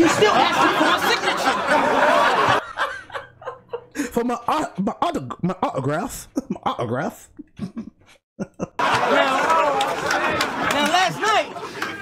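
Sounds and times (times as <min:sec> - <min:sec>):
man laughing: 0:00.0 - 0:08.9.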